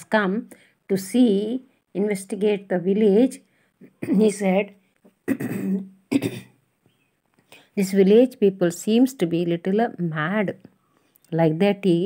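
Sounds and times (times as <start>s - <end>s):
woman coughing: 3.8s - 4.4s, 5.3s - 6.6s.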